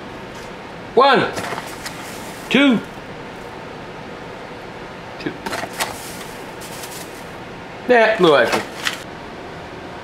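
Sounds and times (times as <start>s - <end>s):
background hum: 0.0s - 10.0s
paper bag crinkling: 1.3s - 2.8s, 5.5s - 7.4s, 8.2s - 9.0s.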